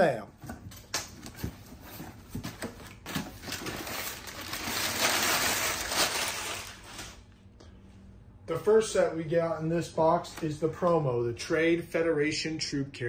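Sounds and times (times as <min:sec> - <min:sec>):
packing tape tearing: 0:02.9 - 0:07.2.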